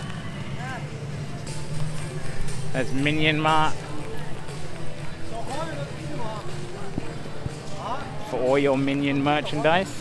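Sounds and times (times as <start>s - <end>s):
low hum of outdoor ambience: 0.0s - 10.0s.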